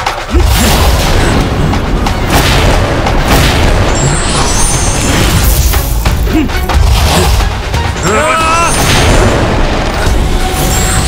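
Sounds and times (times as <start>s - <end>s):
dramatic music with effects: 0.0s - 11.0s.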